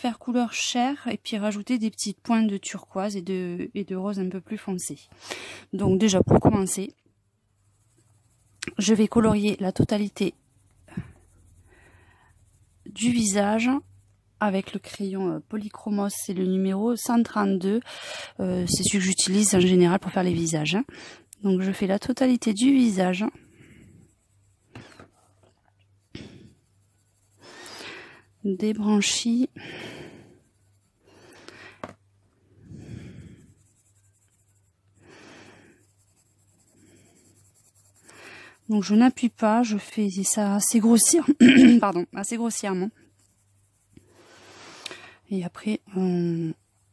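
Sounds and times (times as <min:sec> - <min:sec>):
coloured pencil scratching on paper: 0:00.0 - 0:46.9.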